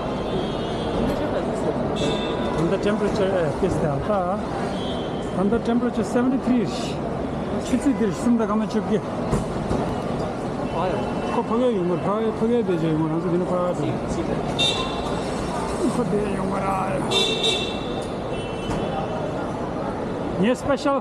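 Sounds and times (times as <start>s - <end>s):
rumble of vehicles: 0.0s - 21.0s.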